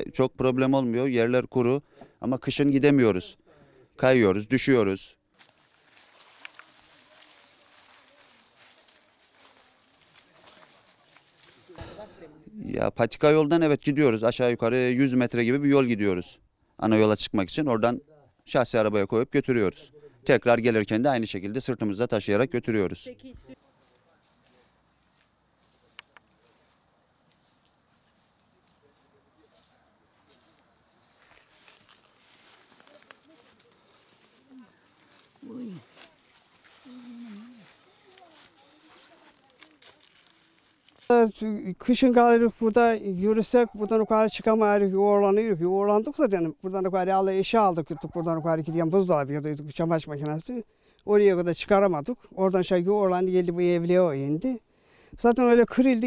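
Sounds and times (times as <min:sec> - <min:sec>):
rustling of undergrowth: 0:05.2 - 0:12.4, 0:23.0 - 0:54.6
faint footsteps on dirt path: 0:05.3 - 0:12.4, 0:23.1 - 0:42.7
short voice sounds: 0:35.4 - 0:36.0, 0:36.8 - 0:38.2.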